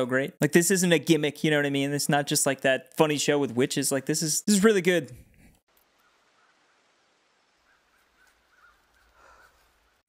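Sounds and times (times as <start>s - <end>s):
faint bird chirps: 5.9s - 10.0s.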